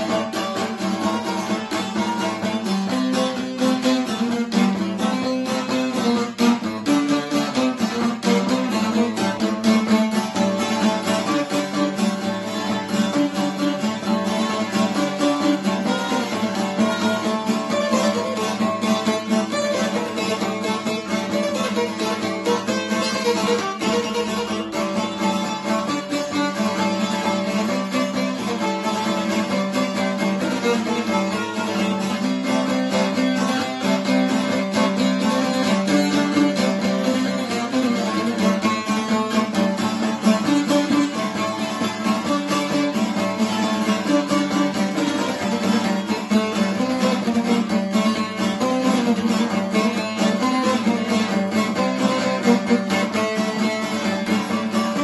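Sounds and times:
long-necked lutes plucking: 0.0s - 55.0s.

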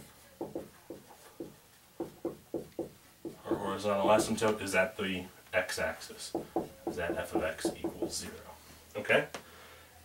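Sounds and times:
marker writing on whiteboard: 0.0s - 4.5s, 6.3s - 8.4s.

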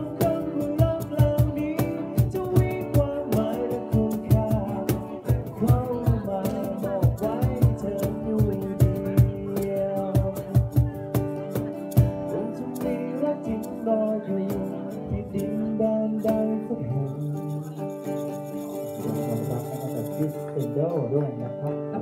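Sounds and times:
acoustic guitar strumming: 0.0s - 22.0s
man singing: 0.0s - 22.0s.

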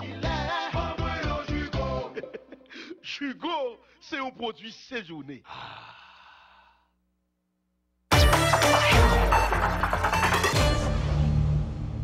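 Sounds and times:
soft breathy sigh: 5.4s - 7.0s.

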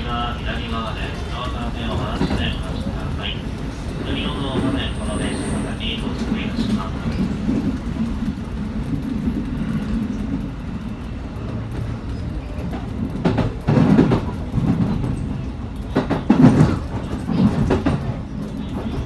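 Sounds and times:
train wheels and motors rumbling: 0.0s - 19.0s.

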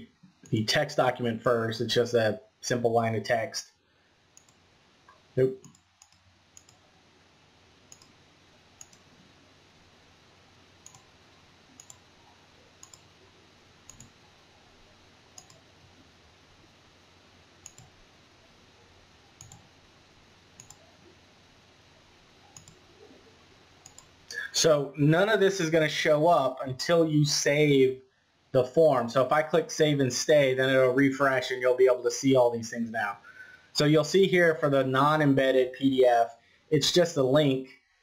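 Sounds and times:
low steady hiss: 0.0s - 38.0s
computer mouse clicks: 4.4s - 6.8s, 7.9s - 8.2s, 8.8s - 9.1s, 10.8s - 11.1s, 11.7s - 12.1s, 12.8s - 13.1s, 13.9s - 14.2s, 15.4s - 15.7s, 17.6s - 18.0s, 19.4s - 19.7s, 20.6s - 20.9s, 22.5s - 22.9s, 23.8s - 24.2s.

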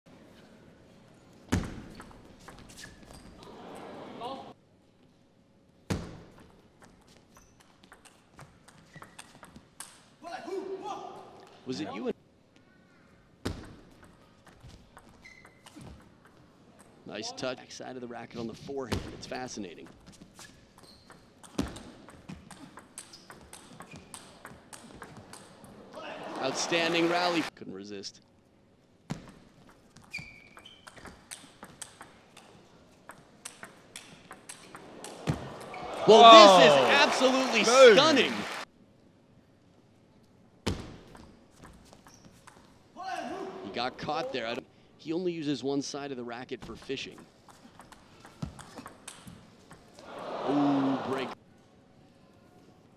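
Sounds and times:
short high squeaks: 15.2s - 15.8s, 30.0s - 31.1s.

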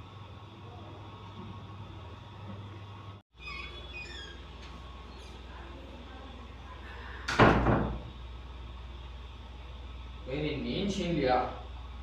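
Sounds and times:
wooden door slamming: 7.4s - 8.0s.

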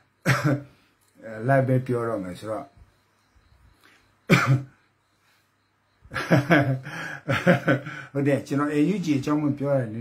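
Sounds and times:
man coughing: 0.2s - 0.7s, 4.3s - 4.8s.

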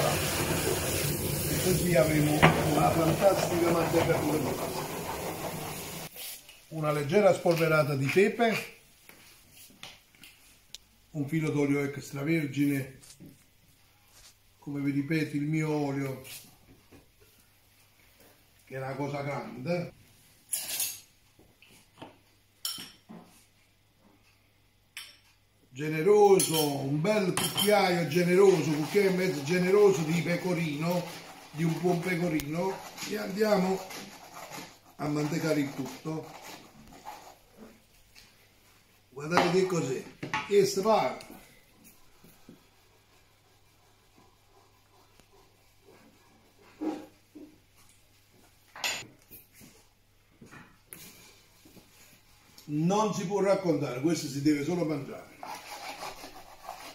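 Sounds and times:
spoon scraping bowl: 0.0s - 6.1s, 27.4s - 37.7s
scrape or clink: 20.5s - 21.1s, 26.4s - 26.8s.

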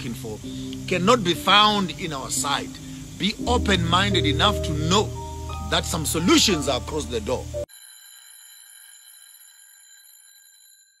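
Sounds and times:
high electronic ringing tone: 4.2s - 11.0s.

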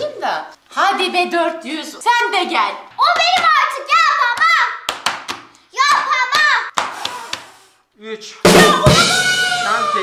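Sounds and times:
person blowing at candles: 6.8s - 7.9s.

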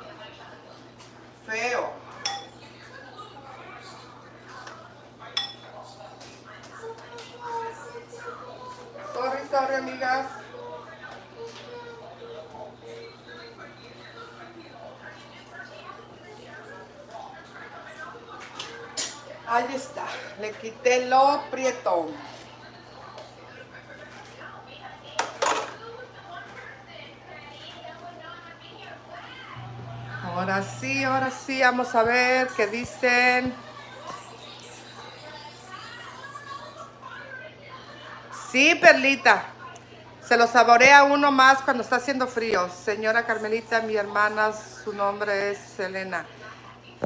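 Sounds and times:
broth simmering: 29.6s - 31.7s.

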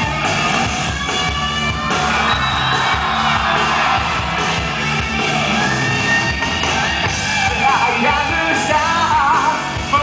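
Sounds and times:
bass notes: 0.0s - 10.0s
live rock band playing: 0.0s - 10.0s.

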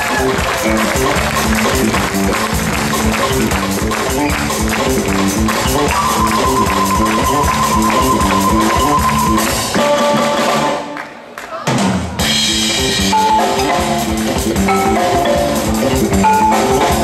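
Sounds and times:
live band playing riff: 0.0s - 11.0s, 11.7s - 17.0s.

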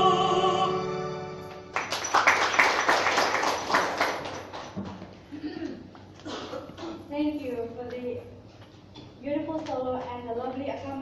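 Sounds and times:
hand clapping: 1.5s - 5.1s.

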